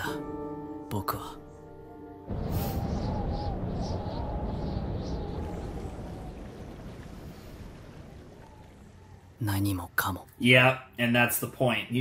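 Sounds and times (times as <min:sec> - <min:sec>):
rushing noise: 0:02.3 - 0:07.8.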